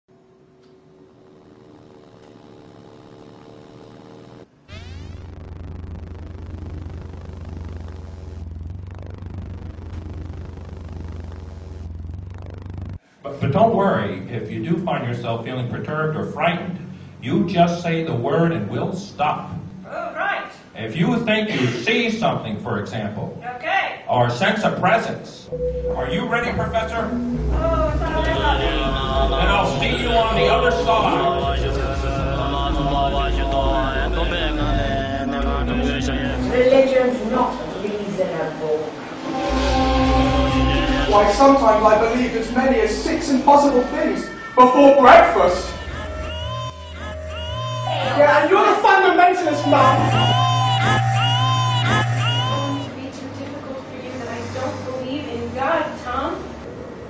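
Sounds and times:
constant low hum: 0:00.2 - 0:19.9, 0:25.5 - 0:44.1
deep rumbling drone: 0:01.2 - 0:13.0, 0:25.5 - 0:38.2, 0:38.9 - 0:44.5, 0:49.5 - 0:52.9
voices chanting: 0:25.5 - 0:38.0, 0:39.2 - 0:52.9.

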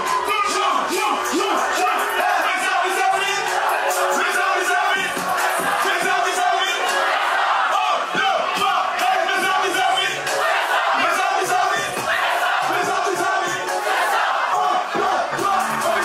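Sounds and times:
crowd shouting together: 0:00.0 - 0:16.0.

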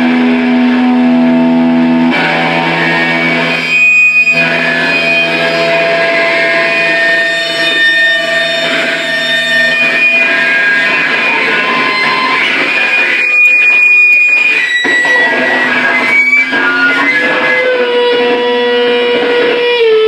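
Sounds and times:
electric guitar held notes: 0:00.0 - 0:20.0
crackling noise: 0:01.5 - 0:19.6.

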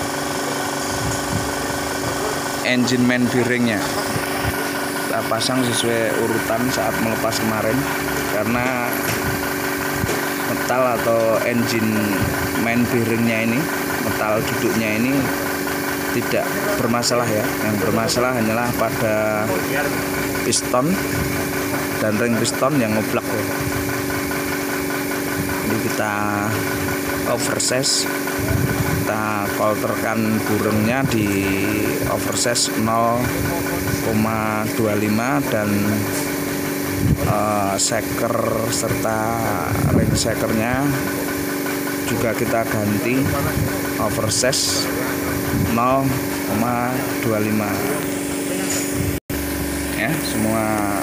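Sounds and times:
engine idling: 0:00.0 - 0:51.0
motor pulsing hum: 0:00.0 - 0:51.0.

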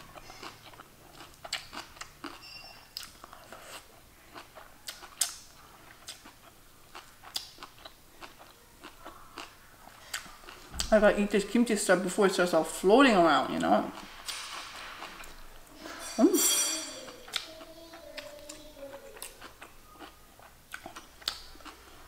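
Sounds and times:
close-up chewing: 0:00.0 - 0:10.8, 0:17.1 - 0:22.0.

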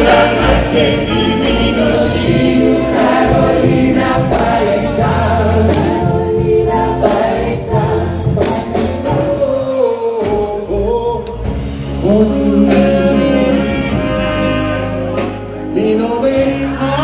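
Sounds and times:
audience singing along: 0:00.0 - 0:17.0
group of singers: 0:00.0 - 0:17.0
live band playing: 0:00.0 - 0:17.0.

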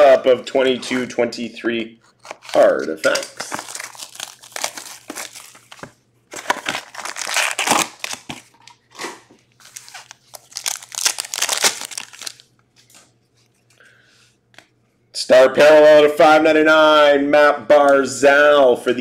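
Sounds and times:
wrapper being torn open: 0:02.0 - 0:08.8, 0:09.6 - 0:12.5
plastic shrink wrap crinkling and tearing: 0:02.0 - 0:13.0.

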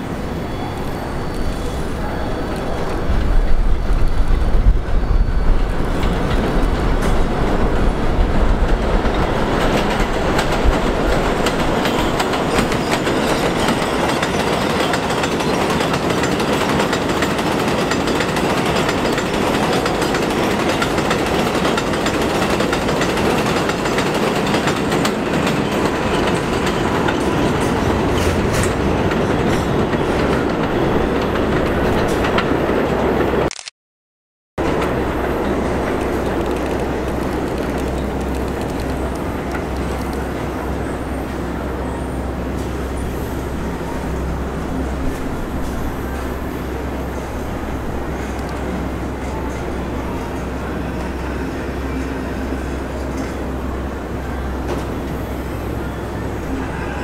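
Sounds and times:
low train rumble: 0:00.0 - 0:33.5, 0:34.6 - 0:57.0
train wheels rushing on rails: 0:00.0 - 0:33.5, 0:34.6 - 0:57.0.

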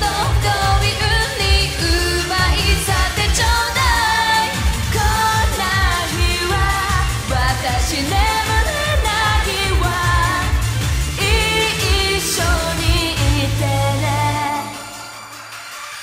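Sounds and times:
group singing pop song: 0:00.0 - 0:15.6
backing track with steady beat: 0:00.0 - 0:16.0.

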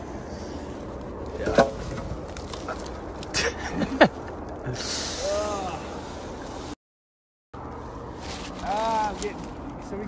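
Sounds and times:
brush and twigs rustling: 0:00.0 - 0:06.8, 0:07.6 - 0:10.0.

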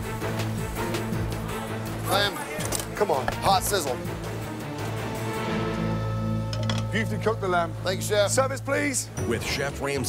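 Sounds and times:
sustained music tones: 0:00.0 - 0:10.0.

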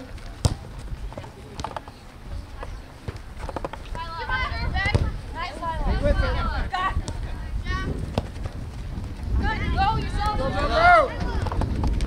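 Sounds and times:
wind rumbling on microphone: 0:00.0 - 0:12.0
people shouting: 0:09.8 - 0:11.4.

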